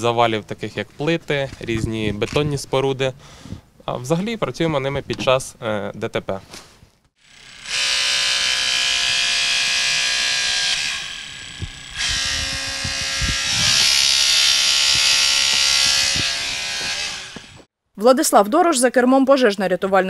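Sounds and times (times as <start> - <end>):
hydraulic rescue tool motor whining: 7.2 - 17.7.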